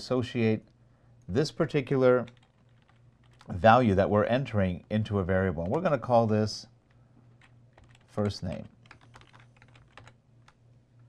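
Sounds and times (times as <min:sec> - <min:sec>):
low steady hum: 0:00.0 - 0:11.0
faint keyboard typing: 0:01.8 - 0:03.6, 0:04.8 - 0:06.2, 0:06.8 - 0:10.6.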